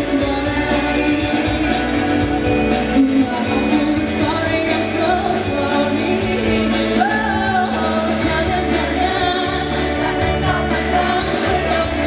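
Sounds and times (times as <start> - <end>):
instrumental backing with bass: 0.0 - 12.0
woman singing into microphone: 0.0 - 12.0.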